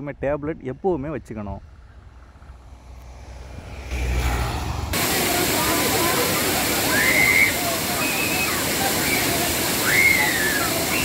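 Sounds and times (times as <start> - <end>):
waterfall pouring onto rock: 5.0 - 11.0
people calling out high cries: 6.8 - 11.0.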